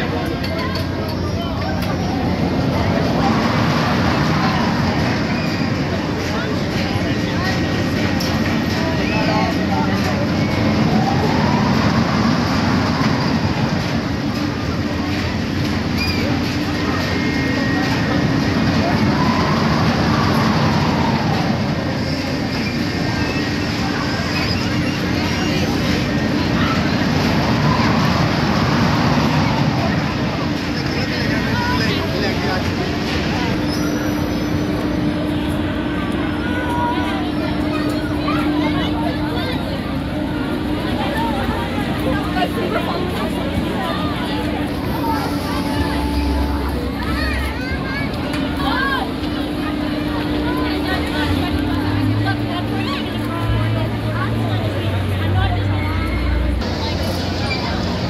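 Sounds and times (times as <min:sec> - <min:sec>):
crowd chatter: 0:00.0 - 0:58.0
ride machinery hum: 0:00.0 - 0:58.0.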